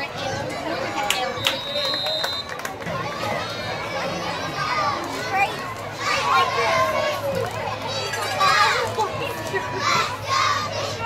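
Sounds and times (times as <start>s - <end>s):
children shouting: 0.0s - 11.0s
crowd murmur: 0.0s - 11.0s.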